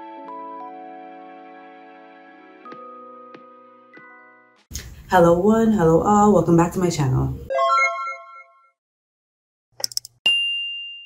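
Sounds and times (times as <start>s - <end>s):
quick clicks: 9.8s - 10.2s.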